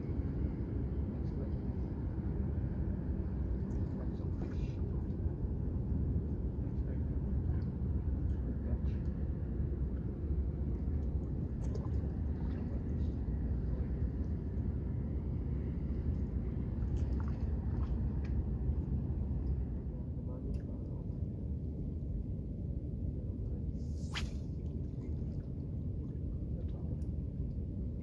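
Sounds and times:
low outdoor rumble: 0.0 - 28.0.

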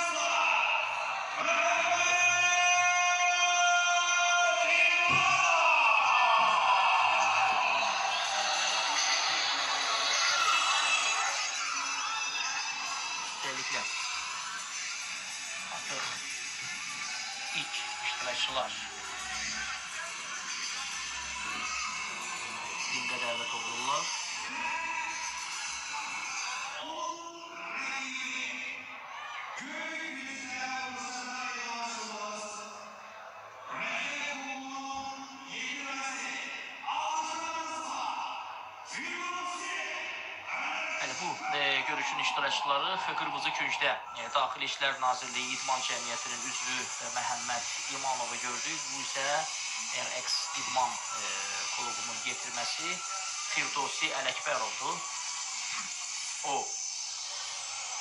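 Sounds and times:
music: 0.0 - 58.0.

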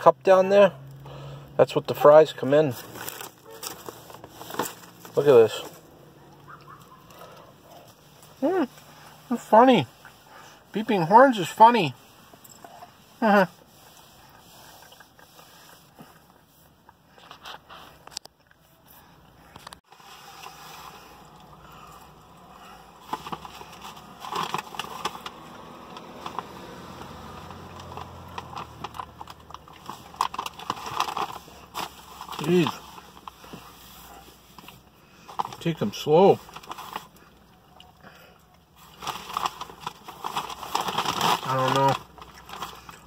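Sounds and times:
paper bag crinkling: 2.4 - 5.9, 22.6 - 37.2, 38.8 - 43.0
chewing: 13.9 - 17.3.

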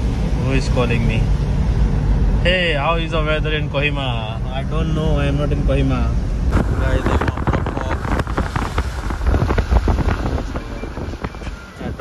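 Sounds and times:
road rumble: 0.0 - 12.0
wind buffeting microphone: 6.4 - 12.0.

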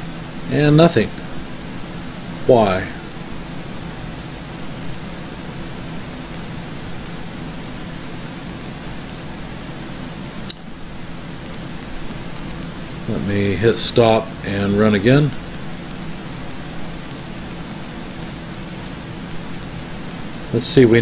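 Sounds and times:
room tone hiss and hum: 0.0 - 21.0.

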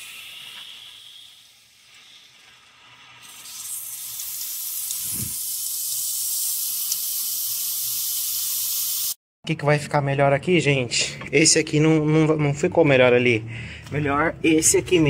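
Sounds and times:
water hissing through hose: 0.0 - 9.2
water spraying from leak: 0.0 - 9.2.

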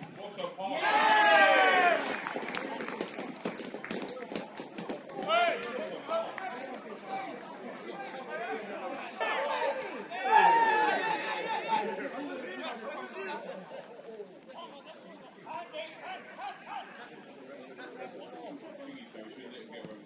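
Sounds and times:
footballers shouting: 0.6 - 2.3, 8.0 - 12.2.

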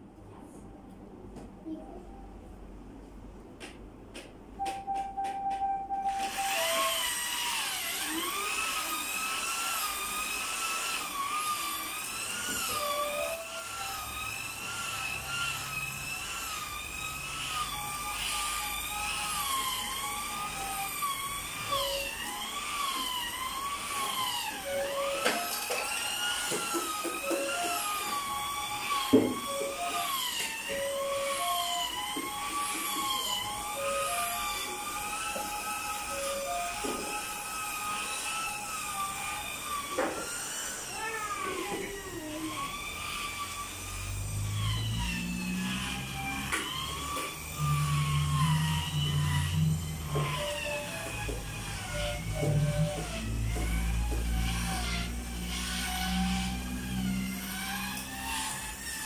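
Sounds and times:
electric scrubber motor whine: 5.1 - 59.0.

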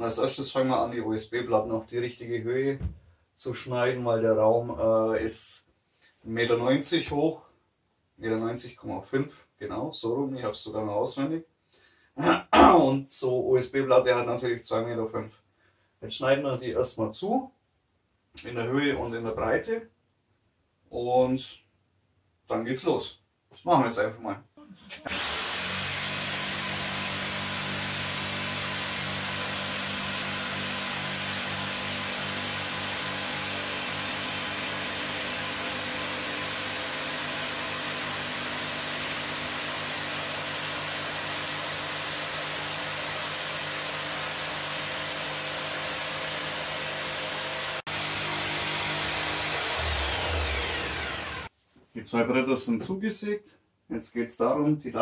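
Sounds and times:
power saw cutting board: 25.0 - 51.5.

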